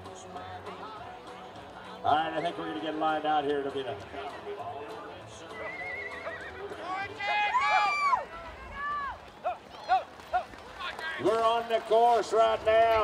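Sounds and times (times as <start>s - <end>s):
horse whinnying: 5.6s - 6.6s.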